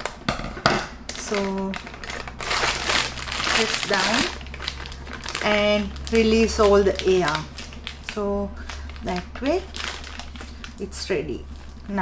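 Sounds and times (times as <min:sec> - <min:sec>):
plastic bag crinkling: 0:01.0 - 0:12.0.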